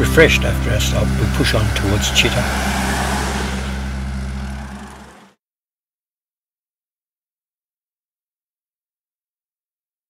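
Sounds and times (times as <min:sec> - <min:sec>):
road noise: 0:00.0 - 0:05.4
vehicle engine running: 0:00.0 - 0:05.4.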